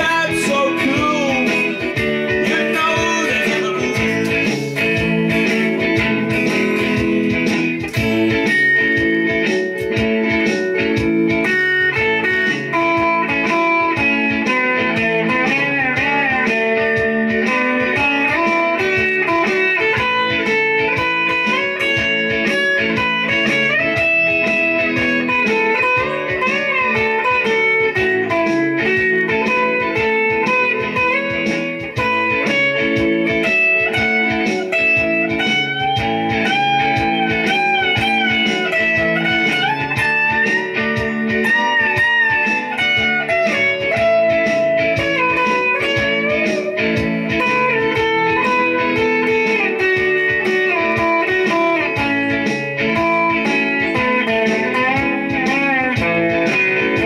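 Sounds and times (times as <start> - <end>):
solo electric guitar: 0.0 - 57.0.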